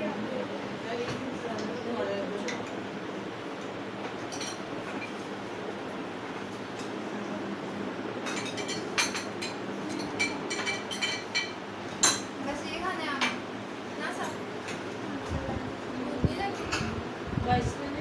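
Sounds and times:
cutlery clinking against glass: 8.2 - 12.3.

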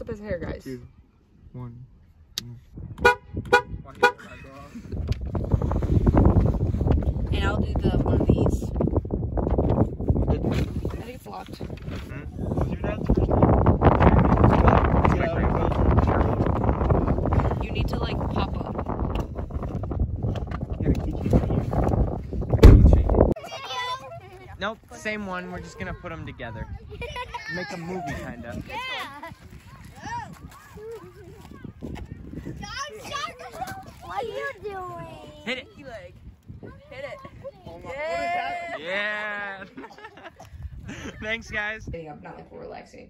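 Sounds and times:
wind rumbling on microphone: 2.4 - 23.4, 24.0 - 38.8, 40.0 - 43.0.

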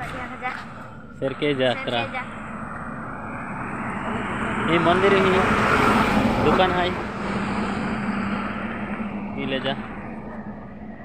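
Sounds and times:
truck approaching on highway: 0.0 - 11.0.

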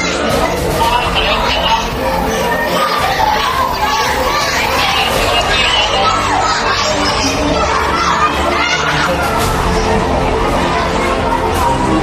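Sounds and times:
children calling and talking: 0.0 - 12.0.

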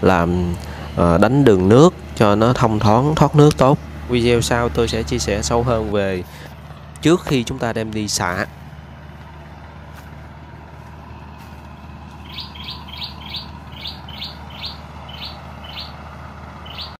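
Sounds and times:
small bird chirping: 12.2 - 16.0, 16.6 - 17.0.

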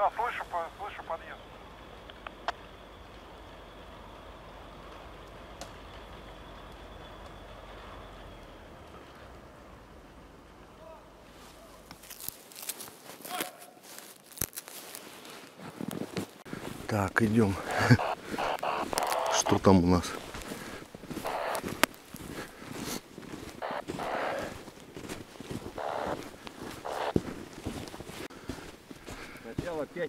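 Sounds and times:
high engine whine: 0.1 - 10.8, 17.6 - 22.2, 23.5 - 24.9
vehicle engine droning: 1.4 - 11.4
footsteps crunching in snow: 11.2 - 30.0.

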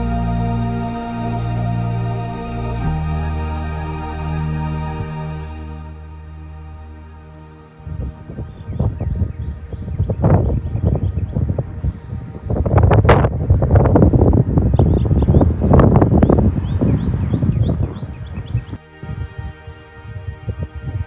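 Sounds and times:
faint music: 0.0 - 21.0
wind buffeting microphone: 7.7 - 21.0.

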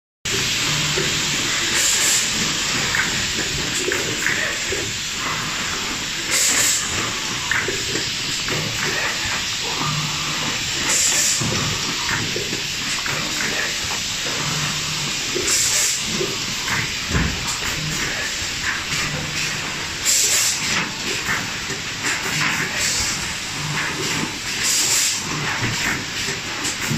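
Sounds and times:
box making machine hissing: 0.3 - 26.9.

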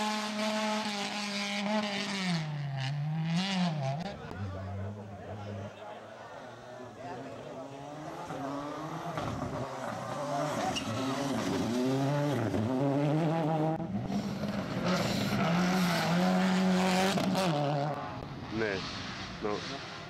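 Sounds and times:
rally car engine revving: 0.0 - 5.8, 7.1 - 20.0.

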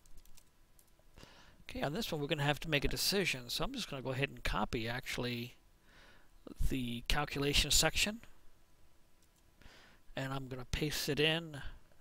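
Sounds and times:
short breath: 1.2 - 1.6, 5.8 - 6.3, 9.6 - 10.1
person speaking: 1.6 - 5.6.

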